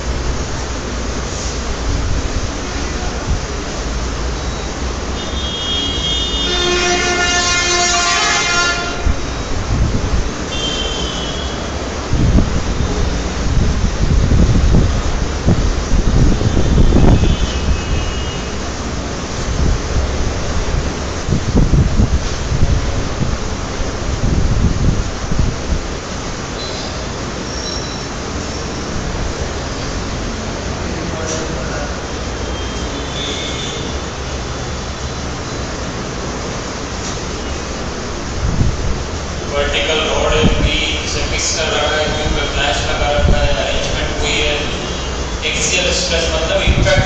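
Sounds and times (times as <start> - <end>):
vehicle horn: 5.2 - 9.2, 10.5 - 11.8, 16.4 - 18.6, 32.4 - 34.0
heavy low rumble: 8.9 - 10.6, 11.5 - 26.5, 34.0 - 47.0.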